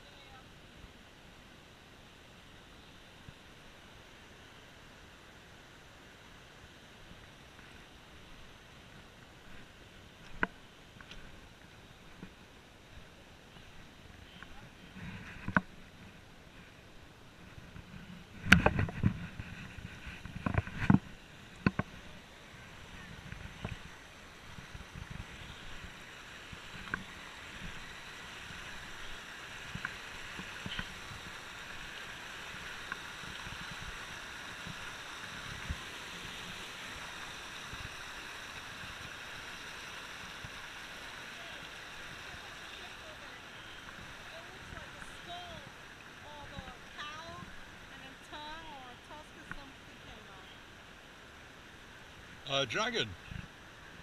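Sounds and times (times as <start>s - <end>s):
water rushing over rocks: 0.0s - 54.0s.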